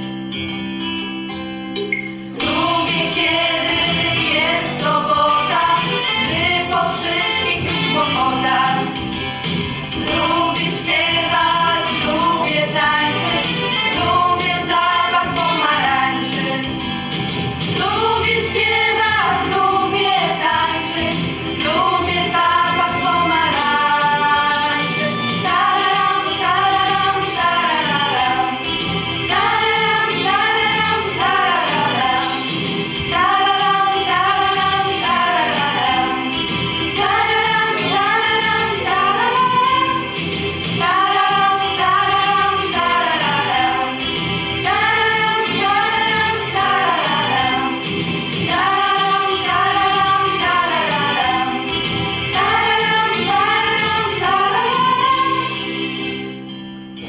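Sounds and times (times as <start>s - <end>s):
female choir singing: 2.4s - 9.0s, 10.0s - 16.7s, 17.8s - 32.5s, 33.1s - 40.1s, 40.7s - 44.0s, 44.6s - 47.8s, 48.4s - 55.7s.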